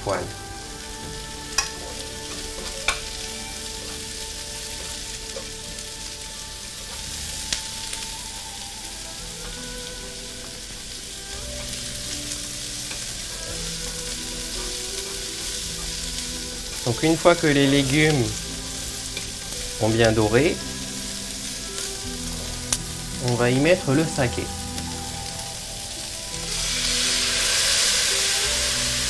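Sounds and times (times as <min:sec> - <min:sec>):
food sizzling in a frying pan: 0:00.0 - 0:29.0
utensils clicking on pan: 0:01.2 - 0:29.0.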